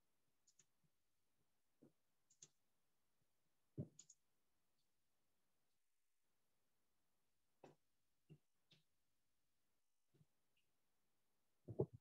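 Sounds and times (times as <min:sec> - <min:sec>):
computer mouse clicks: 0:00.4 - 0:00.7, 0:02.3 - 0:02.6, 0:03.8 - 0:04.2.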